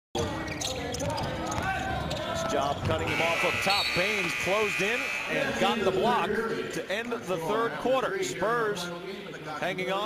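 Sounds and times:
commentator speaking: 0:02.4 - 0:10.0.

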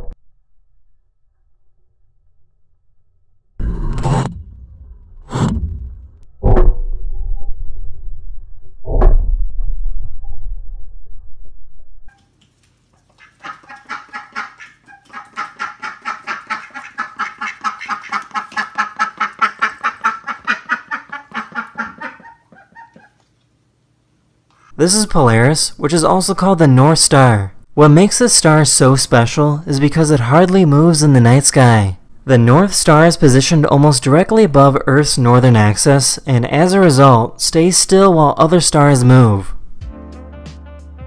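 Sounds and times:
low rumble: 0:00.0 - 0:12.1
ducks quacking: 0:13.1 - 0:23.2.

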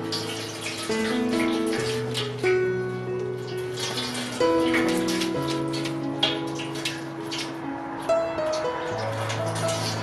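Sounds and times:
background music: 0:00.0 - 0:10.0
water splashing into metal sink: 0:00.0 - 0:10.0.

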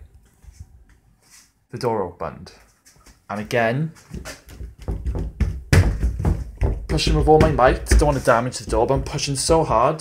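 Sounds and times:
door thudding and knocking: 0:04.2 - 0:09.8.

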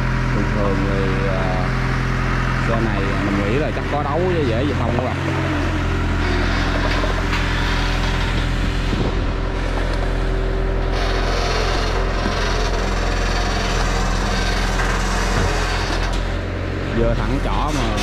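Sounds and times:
excavator diesel engine running: 0:00.0 - 0:18.0.

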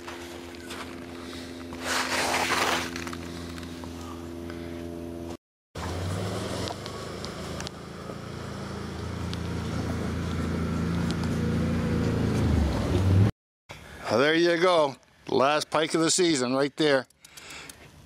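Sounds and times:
low engine hum: 0:02.8 - 0:13.3
vehicle engine running: 0:02.8 - 0:13.3.

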